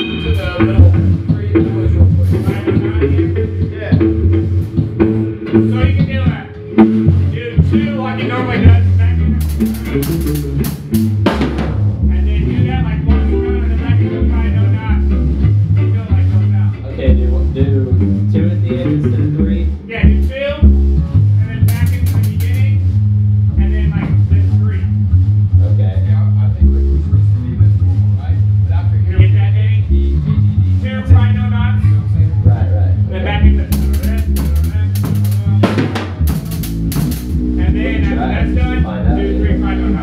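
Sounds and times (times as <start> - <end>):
ska band playing: 0.0 - 25.9, 29.2 - 40.0.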